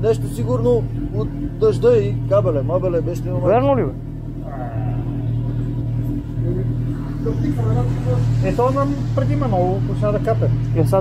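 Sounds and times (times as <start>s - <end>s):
motorcycle engine idling: 0.0s - 11.0s
faint voices: 3.4s - 10.8s.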